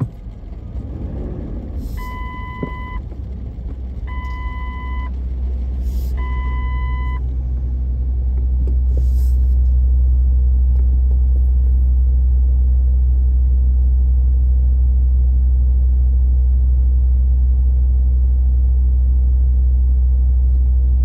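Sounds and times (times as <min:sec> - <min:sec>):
city street traffic: 0:00.0 - 0:16.8
low engine rumble: 0:00.0 - 0:21.0
vehicle reversing alarm beeps: 0:01.9 - 0:03.1, 0:04.0 - 0:05.2, 0:05.9 - 0:07.3.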